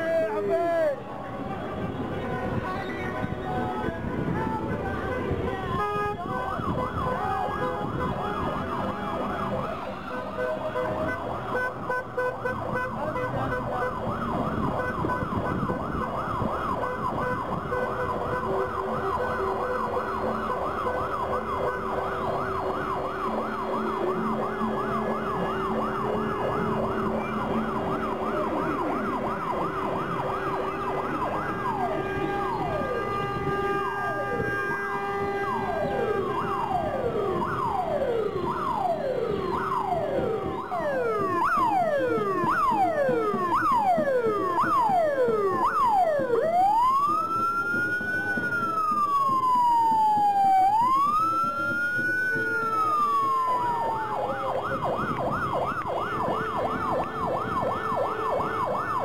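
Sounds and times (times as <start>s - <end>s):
police siren cycling patterns: 2.4s - 59.0s
steady held siren tone: 13.8s - 59.0s.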